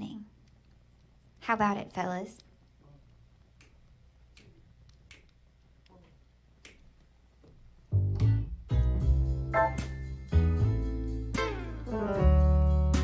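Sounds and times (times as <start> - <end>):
quiet finger snaps: 3.6 - 6.0, 6.6 - 7.0
jazz band with piano and bass: 7.9 - 13.0.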